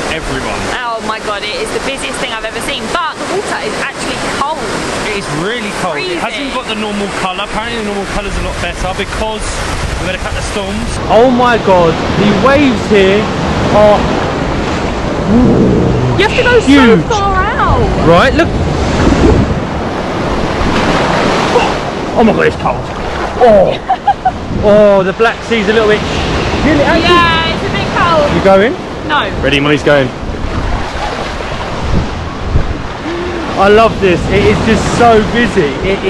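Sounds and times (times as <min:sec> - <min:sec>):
surf breaking in shallows: 0:02.2 - 0:17.2, 0:17.8 - 0:36.0
wind on microphone: 0:08.0 - 0:22.2, 0:22.8 - 0:36.0.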